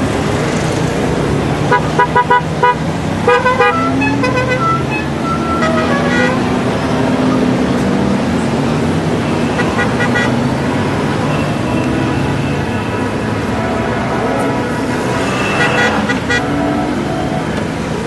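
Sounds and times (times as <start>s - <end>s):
motorcycle horn toots: 1.7s - 6.4s.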